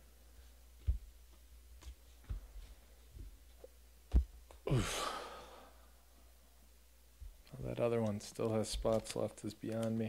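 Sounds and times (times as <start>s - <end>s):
man sighing: 4.6s - 5.8s.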